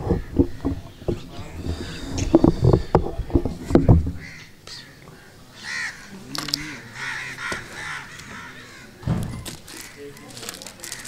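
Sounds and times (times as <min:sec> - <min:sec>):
bird harsh calls: 0:00.0 - 0:11.0
low thump: 0:09.0 - 0:09.4.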